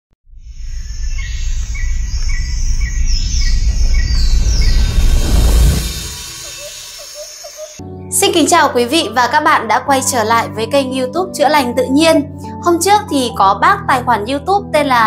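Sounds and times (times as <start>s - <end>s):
high falling whistles: 0.3s - 7.8s
deep rushing rumble: 0.4s - 7.8s
evenly repeated bird calls: 0.5s - 5.2s, 6.0s - 8.2s
birds chirping: 0.5s - 8.6s.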